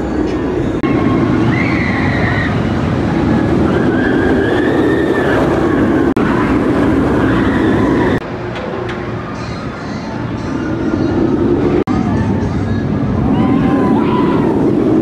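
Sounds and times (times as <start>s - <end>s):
roller coaster train rumbling: 0.0s - 15.0s.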